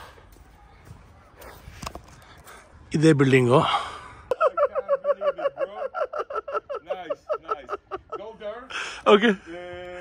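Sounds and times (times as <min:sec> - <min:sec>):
man laughing: 0:04.3 - 0:08.6.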